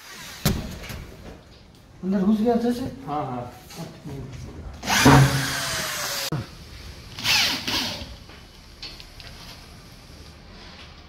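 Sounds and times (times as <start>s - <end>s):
drill-driver driving a screw: 4.8s - 6.3s, 7.2s - 8.1s.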